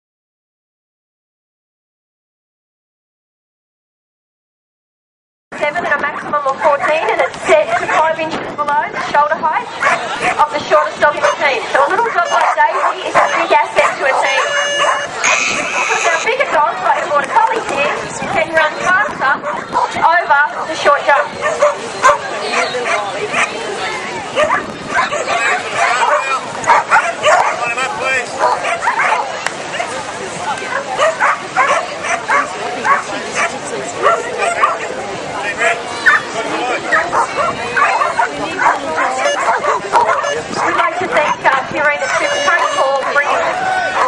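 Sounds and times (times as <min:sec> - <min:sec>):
crowd chatter: 0:05.6 - 0:44.0
dogs barking and yipping: 0:06.0 - 0:08.2, 0:08.8 - 0:30.0, 0:30.6 - 0:44.0.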